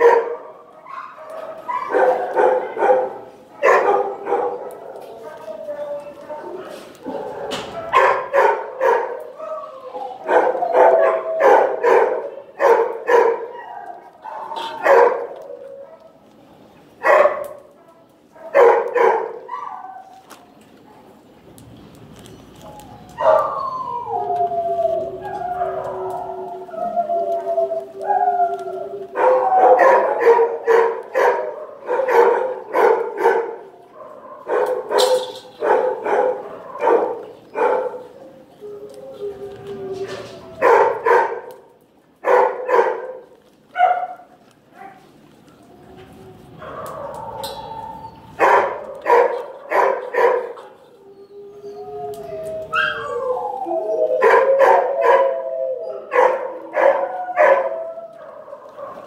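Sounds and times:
dogs barking: 0.0 - 5.4, 6.4 - 16.3, 17.0 - 20.2, 22.7 - 24.3, 27.8 - 38.3, 40.2 - 45.1, 46.6 - 51.1, 52.2 - 59.0
dogs howling: 0.0 - 16.3, 22.6 - 41.6, 44.8 - 59.0.

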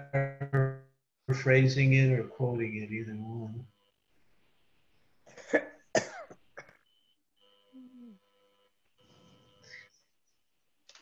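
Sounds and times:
person coughing: 5.3 - 6.8.

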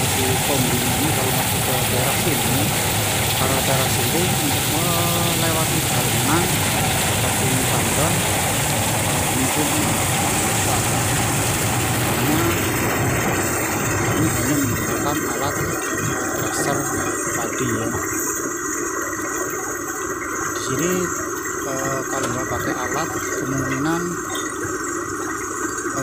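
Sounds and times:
rice thresher running: 0.0 - 18.4, 20.5 - 24.2.

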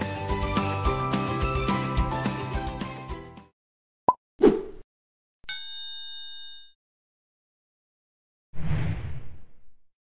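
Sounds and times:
music: 0.0 - 3.5
bell ding: 5.5 - 6.8.

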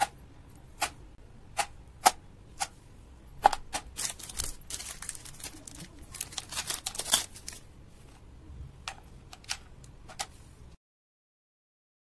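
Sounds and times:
plastic wrapper crinkling: 3.8 - 7.7.

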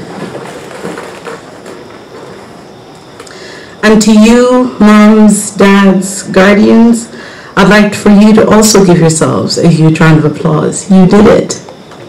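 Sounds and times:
chairs shuffling and clattering: 0.0 - 3.3.

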